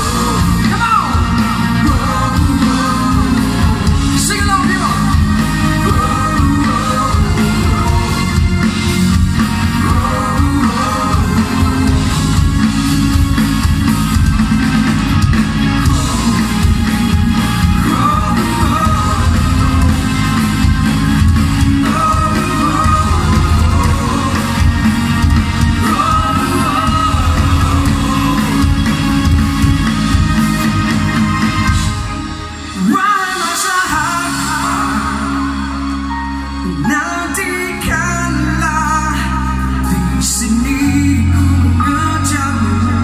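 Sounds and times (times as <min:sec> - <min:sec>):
person singing: 0:00.0 - 0:13.7, 0:15.7 - 0:29.9, 0:32.7 - 0:43.0
bass guitar: 0:00.0 - 0:43.0
drums: 0:00.0 - 0:43.0
electric guitars: 0:00.0 - 0:43.0.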